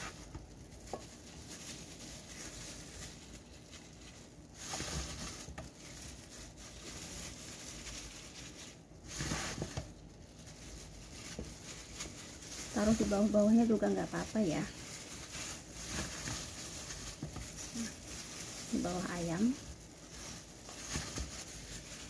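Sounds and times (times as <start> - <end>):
plastic gloves crinkling: 0.0 - 22.0.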